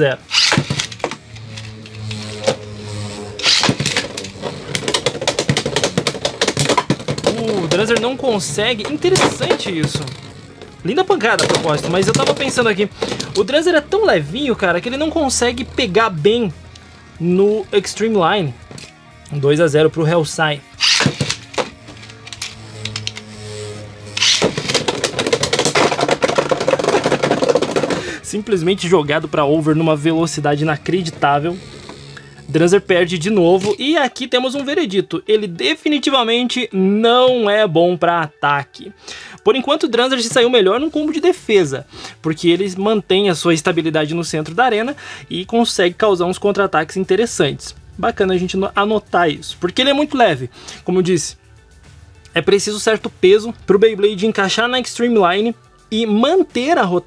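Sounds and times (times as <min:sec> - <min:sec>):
background music: 0:00.0 - 0:57.0
spinning top launch burst: 0:00.3 - 0:00.8, 0:20.8 - 0:21.4
spinning tops clicking and clattering: 0:00.3 - 0:02.2, 0:24.2 - 0:28.0.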